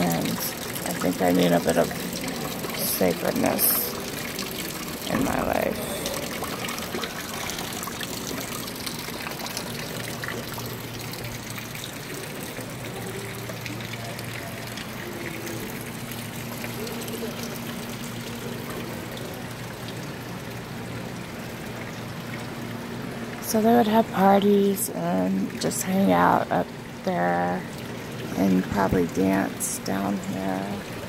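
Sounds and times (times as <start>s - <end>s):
low steady hum: 0.0s - 31.0s
water trickling into fountain basin: 0.0s - 31.0s.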